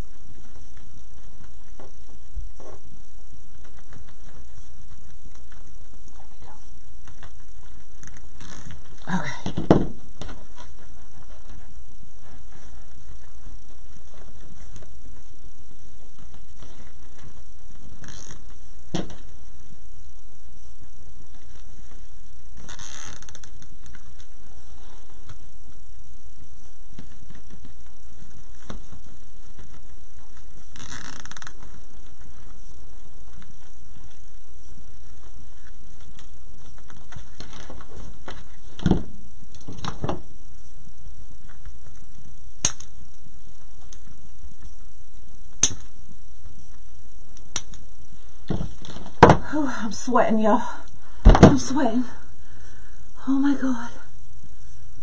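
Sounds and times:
background hiss: 0:00.0 - 0:55.0.

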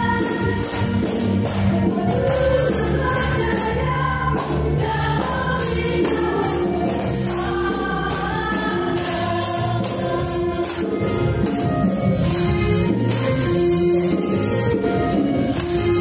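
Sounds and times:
keyboard playing chords and melody: 0:00.0 - 0:16.0
choir-like singing: 0:01.9 - 0:11.0.

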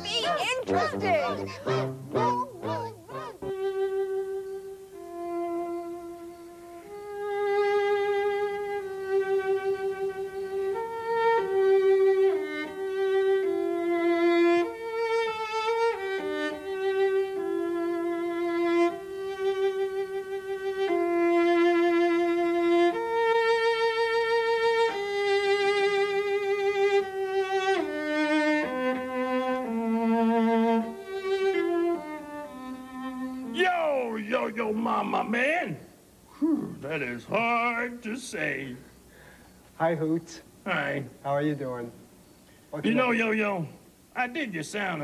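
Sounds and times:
solo cello melody: 0:00.6 - 0:33.5.

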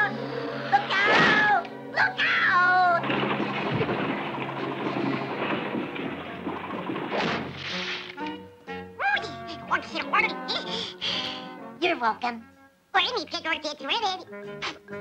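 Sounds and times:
music: 0:00.0 - 0:15.0
cartoon wooden crash: 0:00.9 - 0:01.6, 0:05.9 - 0:08.2.

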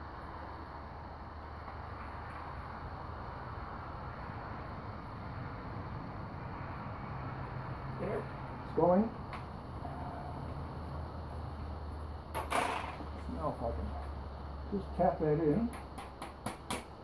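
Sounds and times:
faint low hum: 0:00.0 - 0:15.8
low background rumble and hiss: 0:00.0 - 0:17.0.

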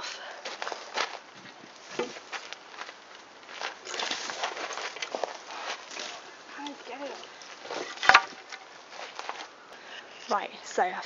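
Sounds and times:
wire cover rustling and scraping: 0:00.0 - 0:09.6.

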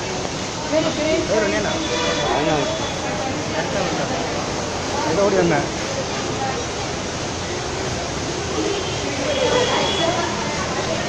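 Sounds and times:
faint voices: 0:00.0 - 0:11.0
steady rushing noise: 0:00.0 - 0:11.0.

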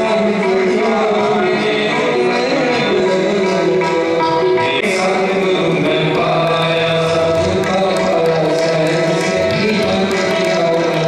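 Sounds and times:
harmonium chords: 0:00.0 - 0:11.0
tabla strokes: 0:00.0 - 0:11.0.

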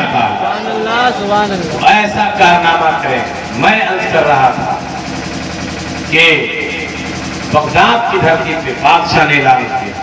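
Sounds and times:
man speaking over public address: 0:00.0 - 0:05.0, 0:06.1 - 0:06.8, 0:07.5 - 0:10.0
steady background hum: 0:00.0 - 0:10.0.

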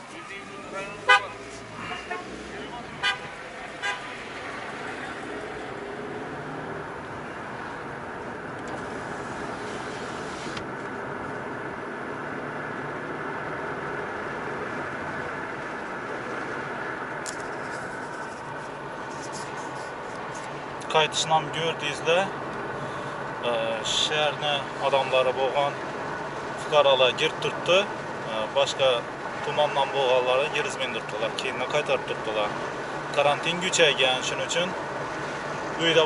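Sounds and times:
car road and engine noise: 0:00.0 - 0:36.0.

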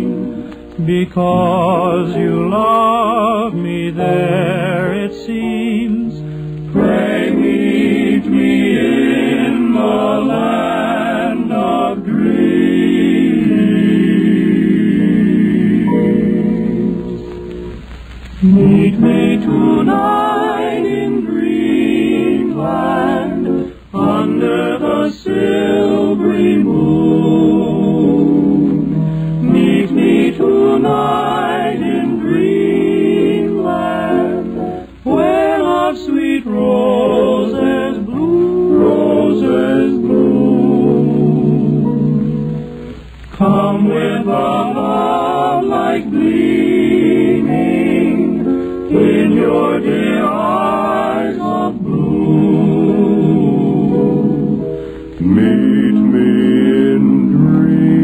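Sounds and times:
male quartet singing a cappella: 0:00.0 - 0:17.0, 0:18.4 - 0:42.4, 0:43.4 - 0:58.0.

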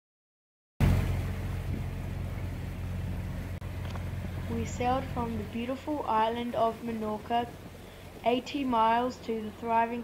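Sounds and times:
air noise: 0:00.8 - 0:10.0
diesel boat engine droning: 0:00.8 - 0:10.0
water wash: 0:00.8 - 0:10.0.

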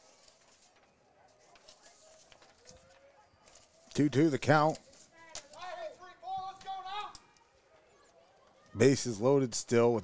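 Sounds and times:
broadcast commentary: 0:00.6 - 0:10.0.

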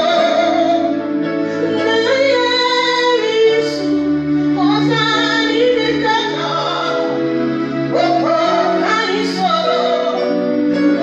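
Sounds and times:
woman singing into a microphone: 0:00.0 - 0:01.0, 0:01.6 - 0:04.0, 0:04.6 - 0:07.2, 0:07.9 - 0:11.0
sustained instrumental backing: 0:00.0 - 0:11.0.

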